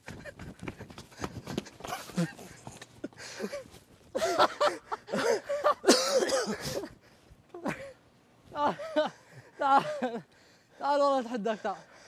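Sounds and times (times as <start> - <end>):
people running footsteps: 0.0 - 4.4.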